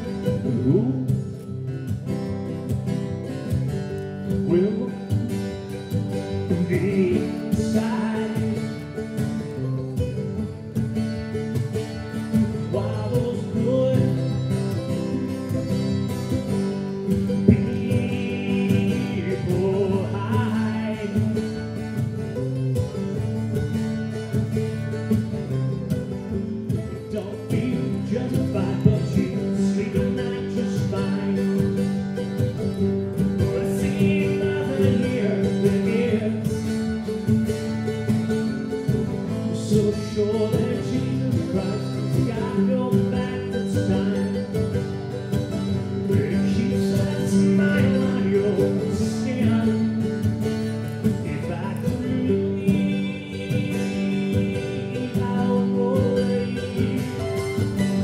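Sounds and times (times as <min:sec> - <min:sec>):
acoustic guitar: 0:00.0 - 0:58.0
mandolin: 0:00.0 - 0:58.0
person singing: 0:00.1 - 0:01.4, 0:04.3 - 0:05.4, 0:06.2 - 0:09.7, 0:12.5 - 0:21.8, 0:26.8 - 0:32.2, 0:33.3 - 0:37.2, 0:38.6 - 0:50.1, 0:50.8 - 0:58.0.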